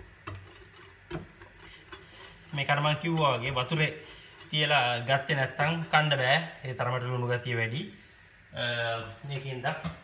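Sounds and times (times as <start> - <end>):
fork whisking batter in a bowl: 0.0 - 7.2.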